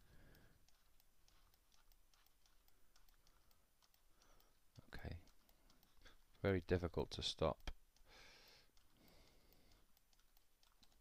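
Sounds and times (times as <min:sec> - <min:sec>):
computer clicks: 0:00.0 - 0:11.0.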